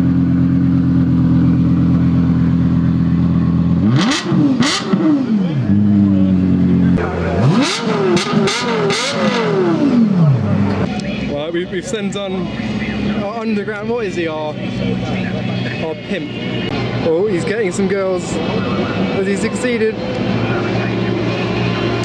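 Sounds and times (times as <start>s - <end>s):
car engine idling and revving: 0.0s - 22.0s.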